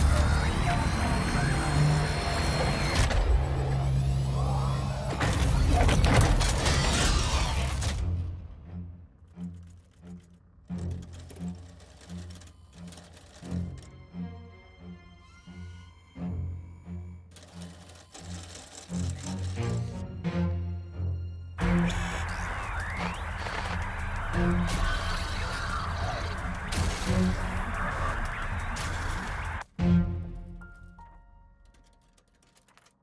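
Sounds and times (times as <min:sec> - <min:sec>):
rapid mechanical clattering: 0:09.6 - 0:13.9, 0:17.3 - 0:19.9, 0:21.6 - 0:29.7.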